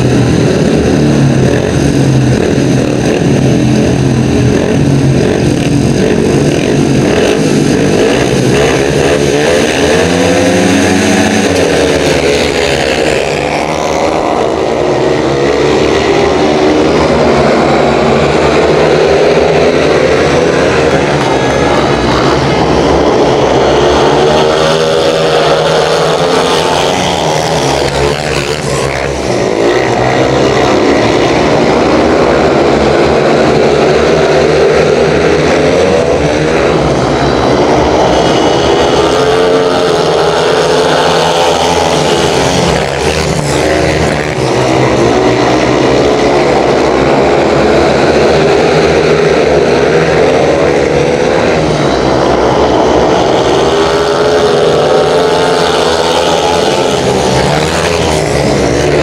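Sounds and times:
motorcycle engines racing: 0.0 - 59.0.

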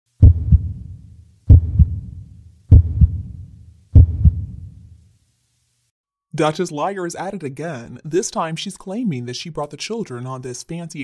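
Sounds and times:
heartbeat thumps: 0.2 - 4.9.

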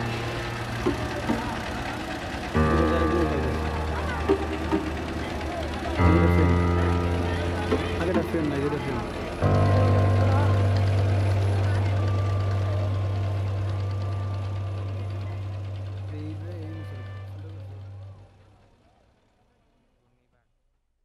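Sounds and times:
motorboat engine humming: 0.0 - 19.3
faint voices: 0.0 - 20.4.

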